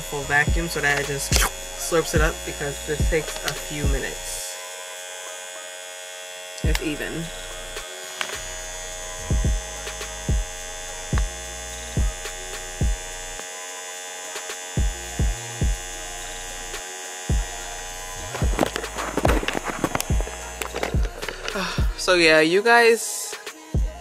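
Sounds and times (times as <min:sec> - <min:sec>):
vacuum pump electric hum: 0:00.0 - 0:22.4, 0:23.6 - 0:24.0
short low thumps: 0:09.3 - 0:09.7, 0:14.8 - 0:15.8, 0:18.2 - 0:19.5, 0:21.0 - 0:22.0
rustling and handling noise: 0:18.2 - 0:21.7.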